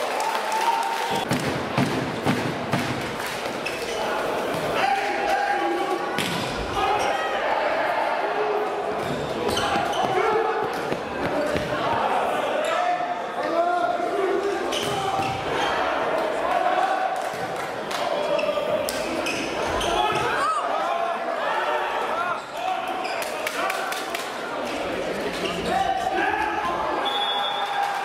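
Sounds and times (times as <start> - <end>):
players and spectators shouting: 3.9 - 24.1, 25.5 - 28.0.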